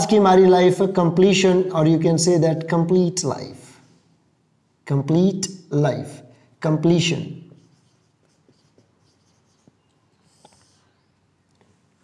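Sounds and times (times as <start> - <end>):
marker writing on whiteboard: 7.4 - 10.8.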